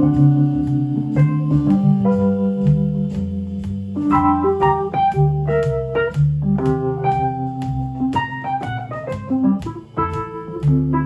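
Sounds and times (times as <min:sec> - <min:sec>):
electric piano jazz chords: 0:00.0 - 0:11.0
low bass notes: 0:00.0 - 0:11.0
steady clicking beat: 0:00.0 - 0:11.0.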